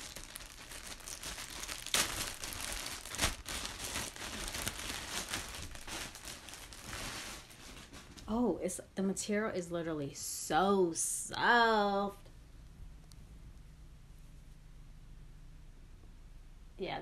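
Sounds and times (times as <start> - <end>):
plastic bag crinkling: 0.0 - 8.4.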